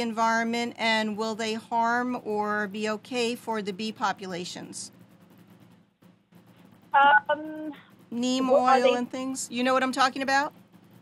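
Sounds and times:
person speaking: 7.0s - 9.2s.

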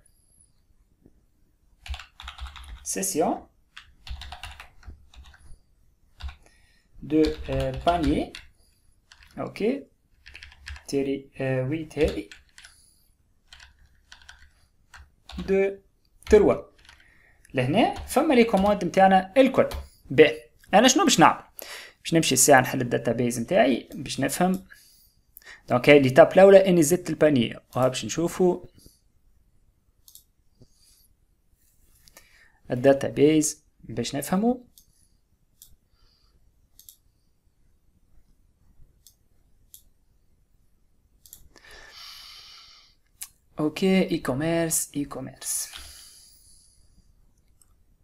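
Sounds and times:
faint keyboard typing: 1.8s - 3.0s, 3.7s - 20.7s, 30.0s - 30.7s, 36.7s - 37.2s, 41.2s - 41.6s
computer mouse clicks: 30.0s - 30.3s, 35.6s - 35.8s, 36.7s - 37.1s, 41.2s - 41.5s.

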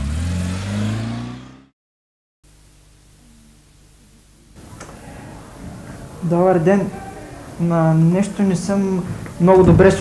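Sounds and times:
car engine revving: 0.0s - 1.7s.

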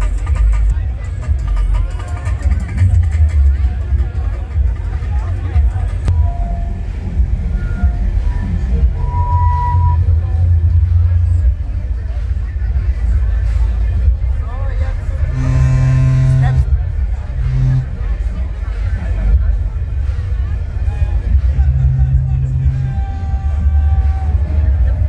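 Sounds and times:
crowd chatter: 0.0s - 25.0s
heavy low rumble: 2.7s - 25.0s
sustained low note: 6.1s - 11.6s, 15.2s - 18.4s, 21.2s - 24.0s.

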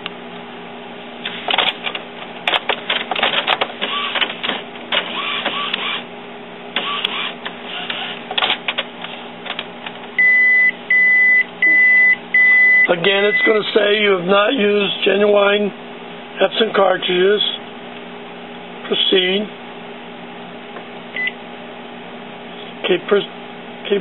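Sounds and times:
printer clicking and whirring: 1.2s - 6.1s, 6.8s - 10.1s
loud printer beeps: 3.9s - 4.2s, 5.1s - 6.0s, 6.8s - 8.2s, 10.2s - 13.7s.

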